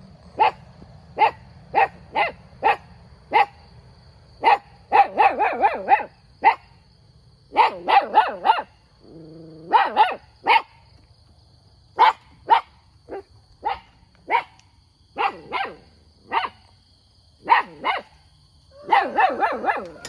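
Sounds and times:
dog barking: 0.4s - 0.6s, 1.2s - 3.6s, 4.4s - 6.7s, 7.5s - 8.8s, 9.6s - 10.8s, 12.0s - 14.6s, 15.2s - 16.7s, 17.4s - 18.2s, 18.8s - 20.0s.

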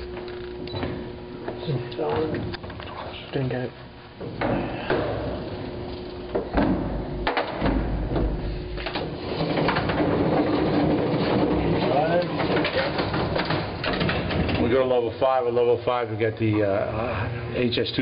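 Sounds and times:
elevator low rumble and hum: 0.0s - 18.0s
elevator cage knocks and rattles: 6.4s - 14.8s.

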